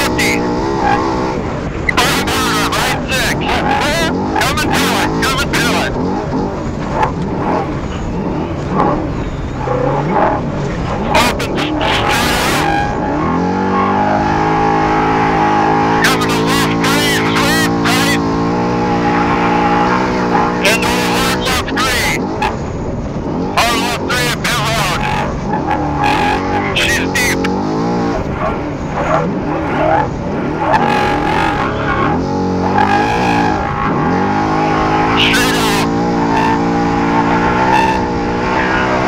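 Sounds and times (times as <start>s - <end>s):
truck engine under hard driving: 0.0s - 39.0s.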